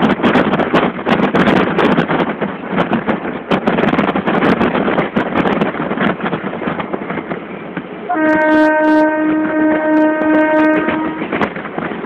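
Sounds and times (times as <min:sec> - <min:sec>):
train rumbling at speed: 0:00.0 - 0:12.0
train horn long note: 0:08.1 - 0:11.5.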